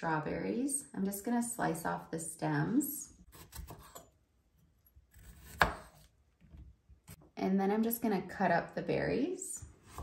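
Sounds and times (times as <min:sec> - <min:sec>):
knife slicing on cutting board: 0:03.3 - 0:04.1, 0:05.1 - 0:06.1.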